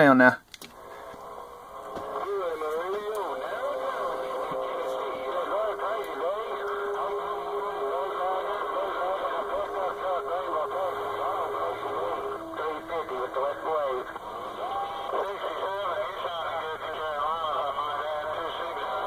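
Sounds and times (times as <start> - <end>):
radio static hiss: 0.0 - 19.0
garbled radio voices: 0.1 - 19.0.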